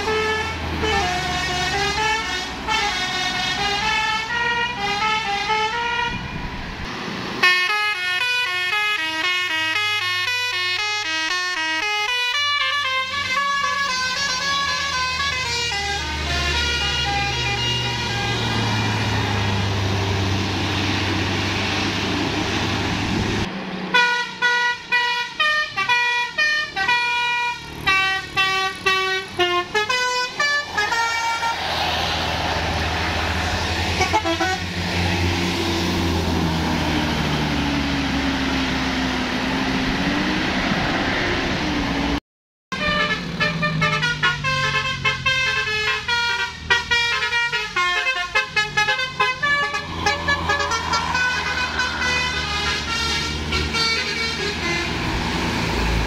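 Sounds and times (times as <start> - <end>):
bus horns playing melodies: 0.0 - 6.5, 7.4 - 21.2, 23.9 - 35.0, 42.7 - 56.0
bus diesel engines running: 0.0 - 42.2, 42.8 - 56.0.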